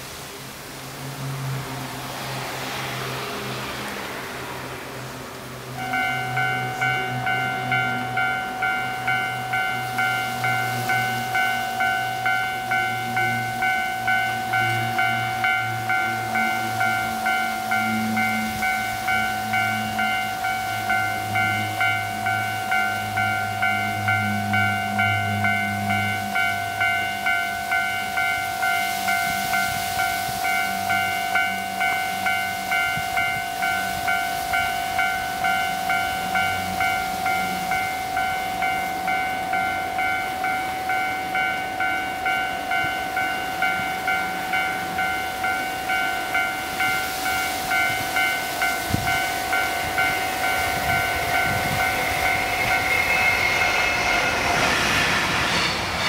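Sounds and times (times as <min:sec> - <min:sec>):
train on elevated railway: 0:00.0 - 0:56.0.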